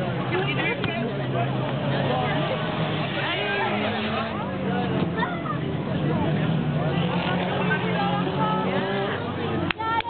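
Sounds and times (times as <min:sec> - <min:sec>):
race car engines revving: 0:00.0 - 0:10.0
spectators' voices: 0:00.0 - 0:10.0.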